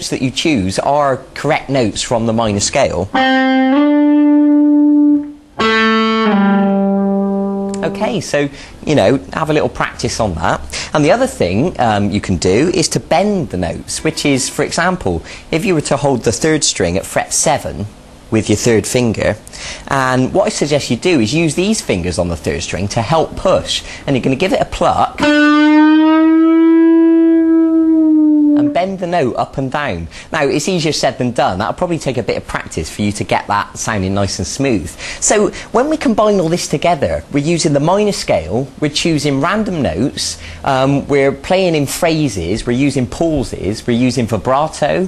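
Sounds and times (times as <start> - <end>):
electric guitar lead notes with slides: 3.1 - 8.2, 13.9 - 14.7, 25.2 - 28.8.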